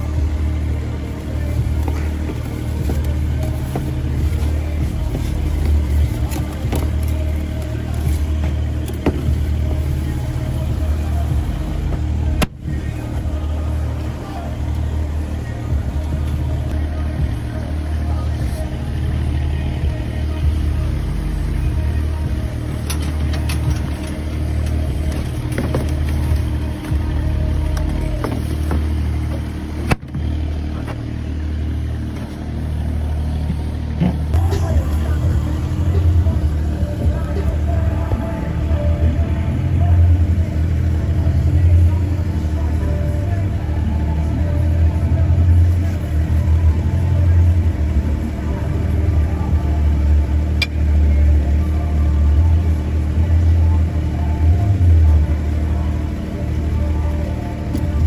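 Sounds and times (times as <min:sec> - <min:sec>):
large engine droning: 0:00.0 - 0:58.0.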